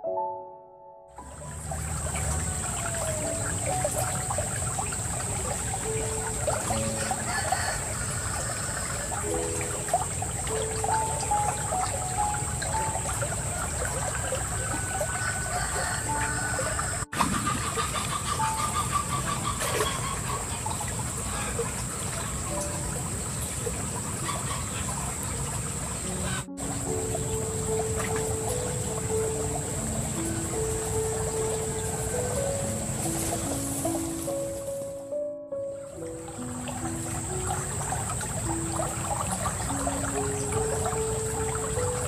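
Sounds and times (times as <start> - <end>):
stream water trickling: 1.2 - 42.0.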